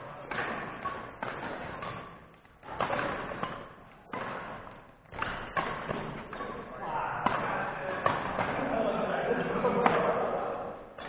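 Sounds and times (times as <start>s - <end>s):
badminton racket strikes: 0.0s - 8.8s
indistinct voices talking: 6.5s - 10.9s.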